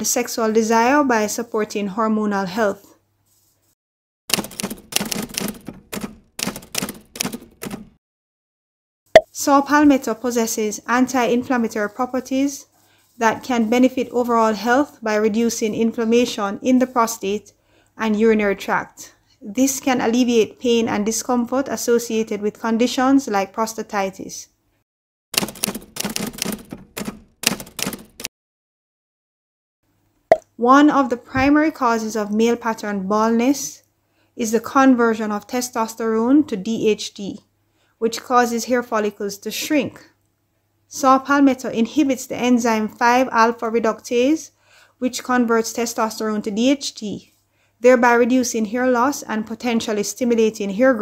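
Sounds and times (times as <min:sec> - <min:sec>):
typewriter key clacks: 0:04.3 - 0:08.0, 0:25.4 - 0:28.3.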